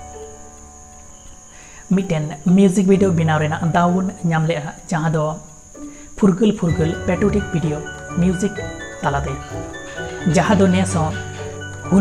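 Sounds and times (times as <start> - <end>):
soft background music: 0.0 - 12.0
person speaking: 1.9 - 12.0.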